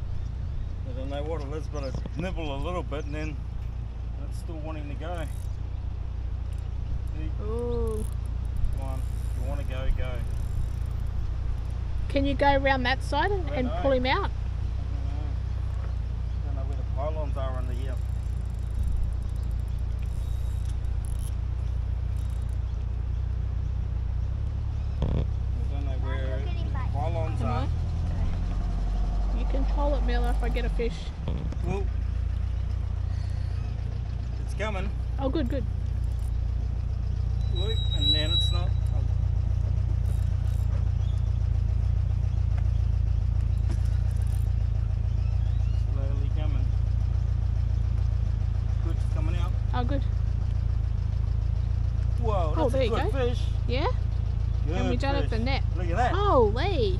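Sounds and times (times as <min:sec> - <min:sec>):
fishing reel ticking: 0:05.1 - 0:05.6, 0:07.8 - 0:11.8, 0:17.9 - 0:22.6, 0:36.0 - 0:36.4, 0:40.0 - 0:40.7, 0:43.5 - 0:44.5
man speaking: 0:25.6 - 0:27.8, 0:52.2 - 0:53.6, 0:54.6 - 0:56.2
wind rumbling on microphone: 0:27.7 - 0:33.9.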